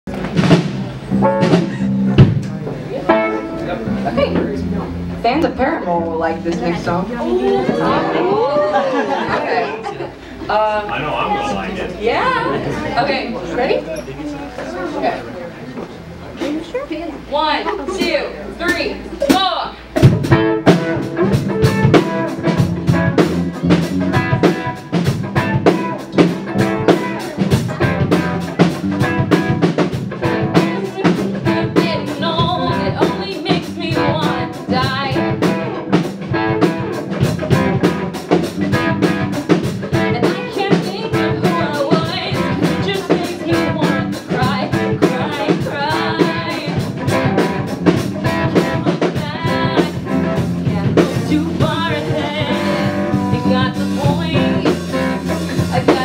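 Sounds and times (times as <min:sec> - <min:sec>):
drum and cymbal hits: 0:00.1 - 0:05.6, 0:18.7 - 0:56.0
held electric guitar notes: 0:00.1 - 0:08.8, 0:19.1 - 0:56.0
rock band playing: 0:00.1 - 0:13.9, 0:15.9 - 0:56.0.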